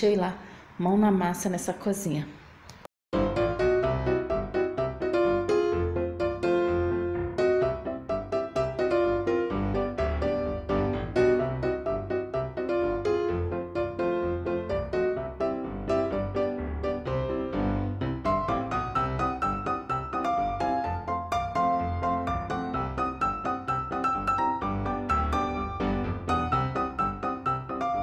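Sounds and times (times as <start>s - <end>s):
instrumental piano music: 3.1s - 28.0s.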